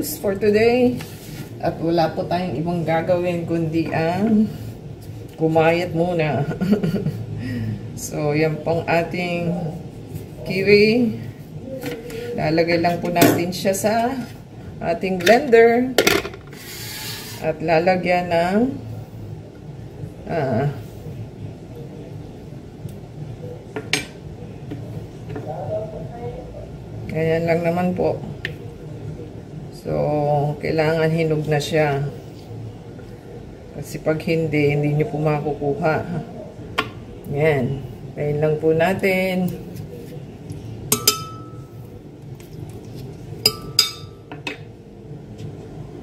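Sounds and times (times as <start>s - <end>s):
spoon clinking on glass jar: 43.5s - 44.2s.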